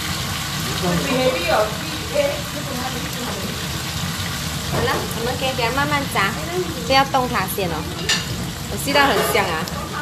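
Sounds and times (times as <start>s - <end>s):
tofu sizzling in hot oil: 0.0s - 10.0s.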